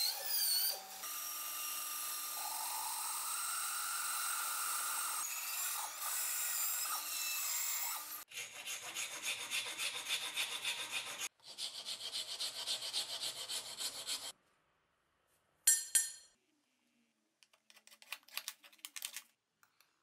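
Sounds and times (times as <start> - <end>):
hand file rasping on wood: 8.3 - 14.3.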